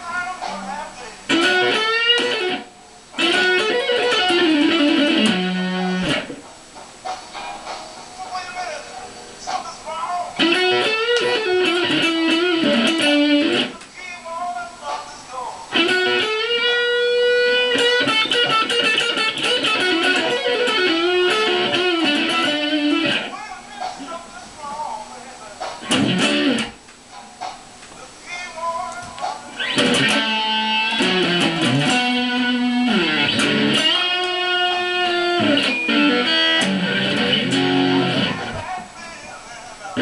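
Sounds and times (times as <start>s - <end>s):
electric guitar blues lead: 0.0s - 6.4s, 10.0s - 13.8s, 15.6s - 23.4s, 25.8s - 26.9s, 28.8s - 39.0s.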